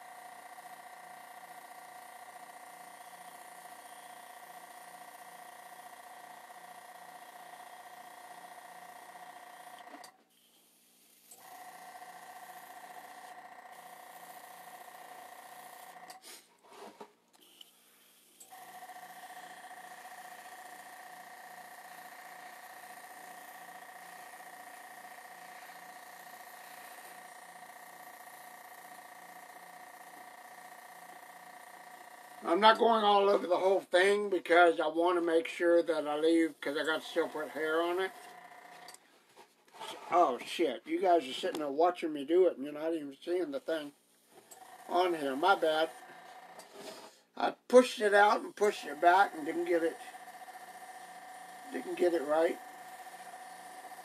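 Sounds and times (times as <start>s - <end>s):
airbrush compressor whining: 0.0s - 16.4s, 17.4s - 39.0s, 43.3s - 54.0s.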